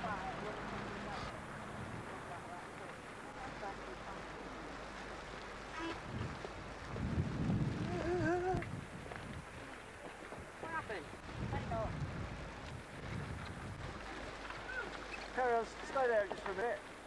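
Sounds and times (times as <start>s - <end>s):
faint voices: 0.0s - 6.4s, 13.7s - 17.0s
wind buffeting microphone: 5.8s - 14.9s.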